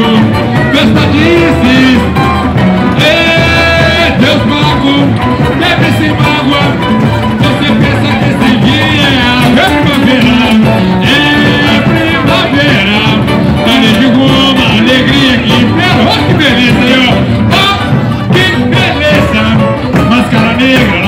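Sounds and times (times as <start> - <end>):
person singing: 0.0 - 21.0
samba percussion band: 0.0 - 21.0.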